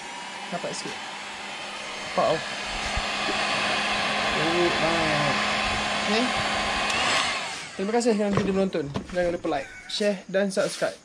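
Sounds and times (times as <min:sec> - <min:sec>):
heat gun blowing air: 0:00.0 - 0:08.2.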